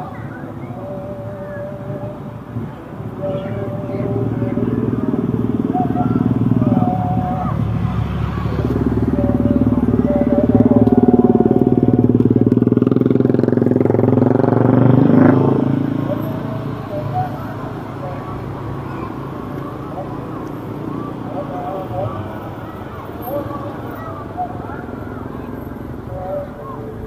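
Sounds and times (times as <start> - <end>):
slow car traffic: 0.0 - 27.0
motorcycle passing close: 2.6 - 27.0.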